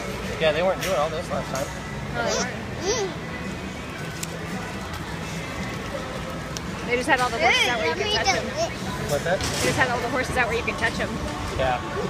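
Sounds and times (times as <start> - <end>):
distant crowd chatter: 0.0 - 12.0.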